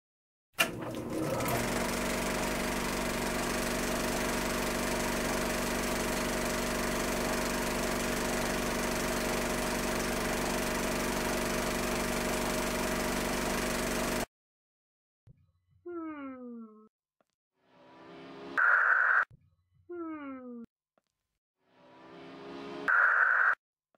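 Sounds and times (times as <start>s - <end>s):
film projector whirring: 0.6s - 14.3s.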